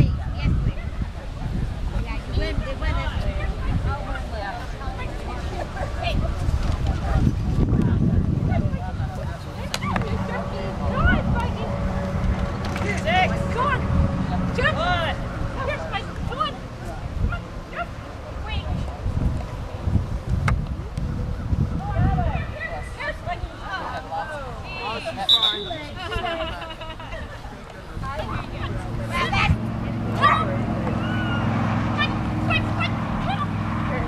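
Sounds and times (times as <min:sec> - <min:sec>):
low engine hum: 0:00.0 - 0:22.6, 0:27.8 - 0:34.0
wind rumbling on microphone: 0:00.0 - 0:24.7, 0:25.8 - 0:34.0.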